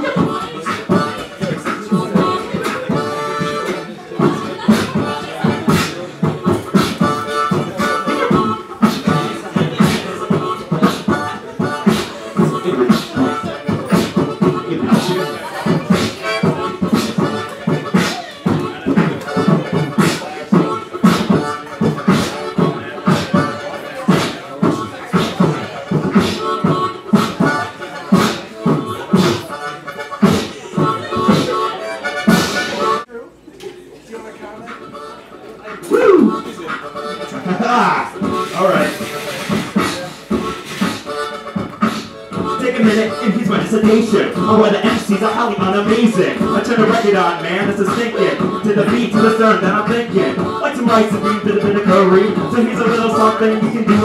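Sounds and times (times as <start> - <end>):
harmonica chords: 0.0 - 33.1, 34.4 - 54.0
vocal beatbox: 0.0 - 33.1, 34.7 - 54.0.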